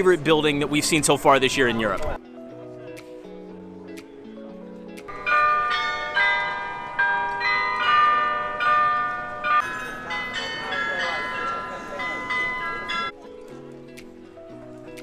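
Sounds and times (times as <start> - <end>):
carillon bells playing a tune: 5.1 - 13.2
crowd chatter: 7.4 - 13.4.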